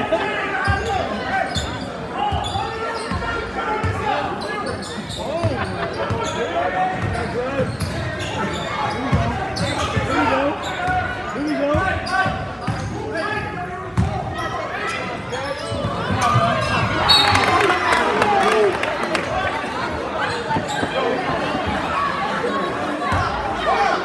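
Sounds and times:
players and spectators shouting: 0.0s - 24.0s.

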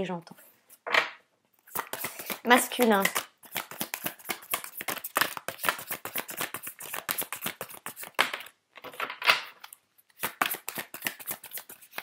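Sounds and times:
cards being shuffled: 1.6s - 8.5s, 9.6s - 12.0s.

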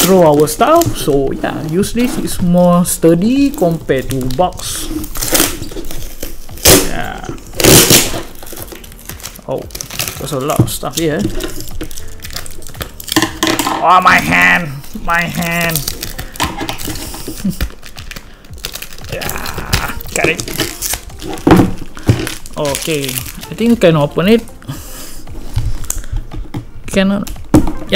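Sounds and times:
plastic wrap crinkling: 0.0s - 27.9s
packing tape pulled off plastic: 3.2s - 13.4s, 14.8s - 24.4s.

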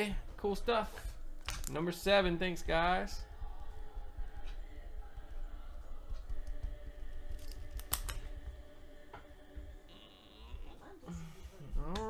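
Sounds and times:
low background rumble: 2.0s - 7.4s.

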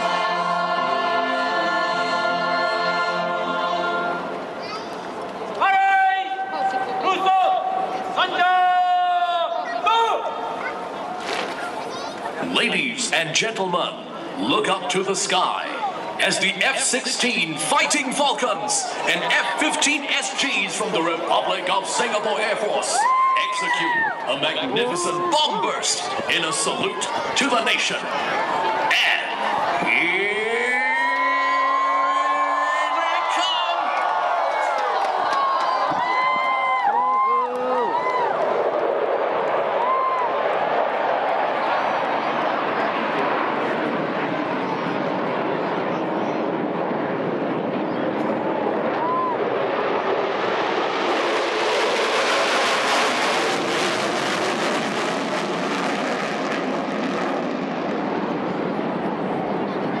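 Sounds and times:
fighter jets roaring overhead: 0.0s - 60.0s
crowd whooping and cheering: 15.8s - 27.4s, 28.0s - 43.2s, 48.4s - 50.2s.

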